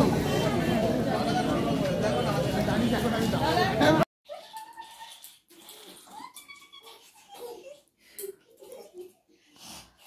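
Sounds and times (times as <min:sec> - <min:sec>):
person breathing: 0:09.3 - 0:10.0.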